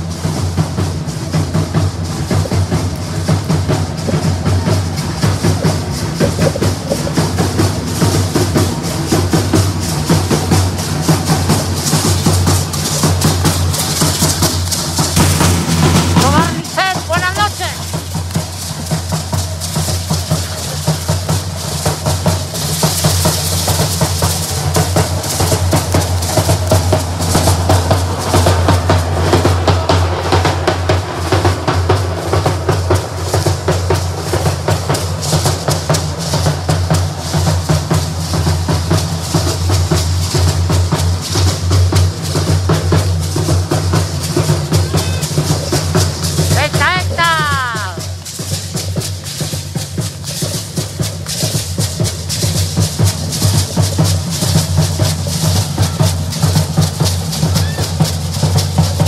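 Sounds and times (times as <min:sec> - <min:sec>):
bass drums beating fast rhythm: 0:00.0 - 0:59.0.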